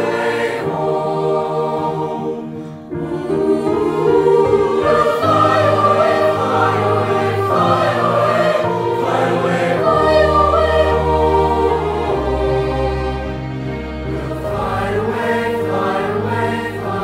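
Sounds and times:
choir singing in parts: 0.0 - 17.0.

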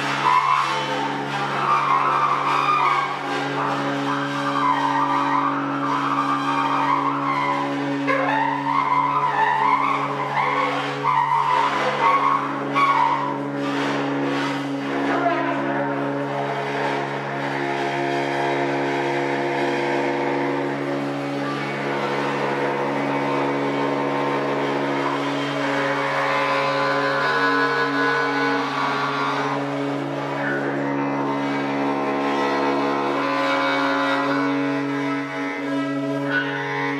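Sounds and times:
cymbals scraped with a stick: 0.0 - 18.6
held metallic drone: 0.0 - 36.9.

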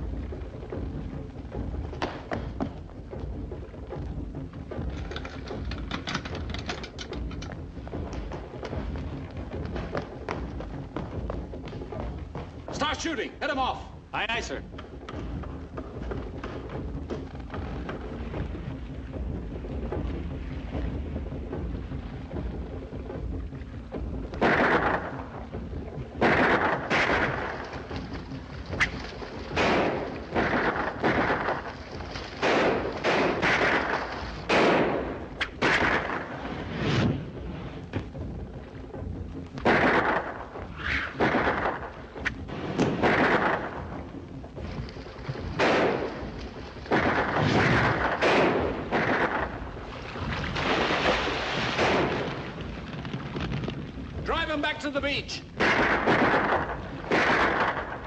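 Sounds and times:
sharp echoing gunshots: 24.4 - 25.5, 26.2 - 37.2, 39.6 - 44.2, 45.5 - 49.8, 50.6 - 52.6, 54.3 - 58.0.

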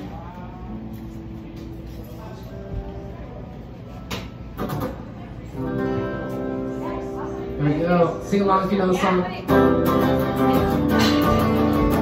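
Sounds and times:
electric guitar strumming: 5.6 - 12.0.

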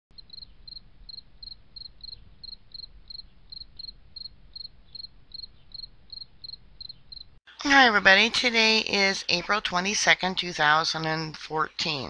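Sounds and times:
cricket chirping: 0.2 - 7.4.

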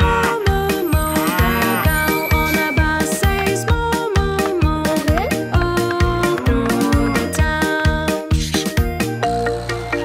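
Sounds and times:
upbeat children's song music: 0.0 - 10.0
cartoon cow mooing: 1.0 - 2.2, 6.2 - 7.4.

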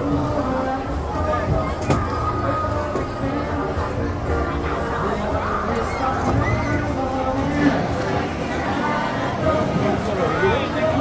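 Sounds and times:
music playing: 0.0 - 11.0
people talking: 0.0 - 11.0.

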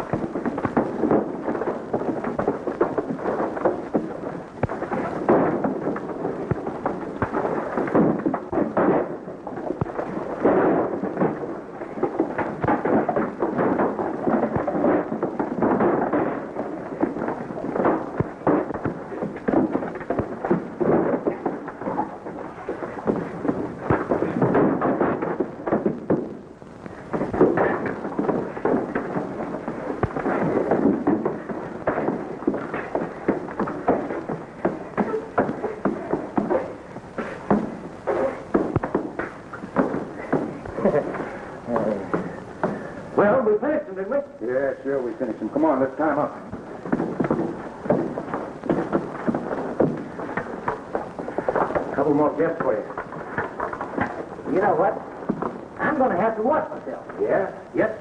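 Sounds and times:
punches and thuds: 0.0 - 43.4, 45.5 - 56.6.

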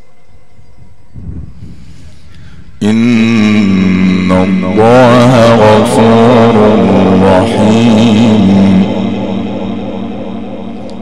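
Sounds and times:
low steady hum: 0.0 - 11.0
man reciting melodically: 2.7 - 11.0.

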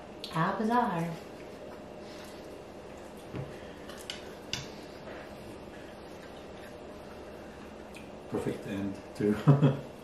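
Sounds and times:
chewing pizza: 5.2 - 8.2.

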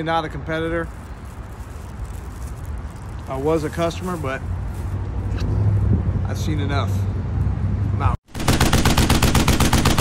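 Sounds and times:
machine-gun fire: 8.3 - 10.0.

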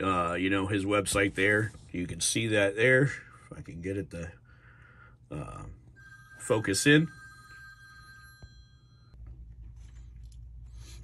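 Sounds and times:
high ringing tone: 5.9 - 9.2.

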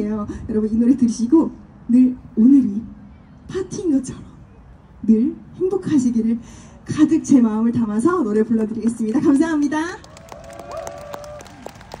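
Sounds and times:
audience applauding: 10.0 - 12.0.

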